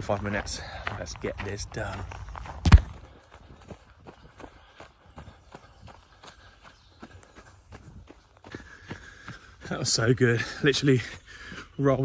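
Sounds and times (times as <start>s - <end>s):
running footsteps on dirt path: 0.0s - 12.0s.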